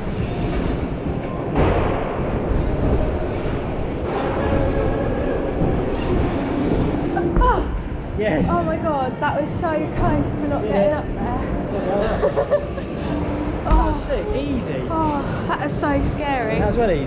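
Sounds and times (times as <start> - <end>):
thud: 1.6 - 2.6.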